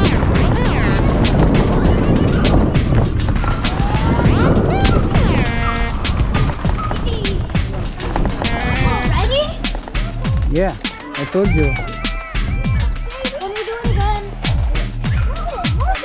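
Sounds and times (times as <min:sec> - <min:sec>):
wind rumble on microphone: 0:00.0 - 0:10.8.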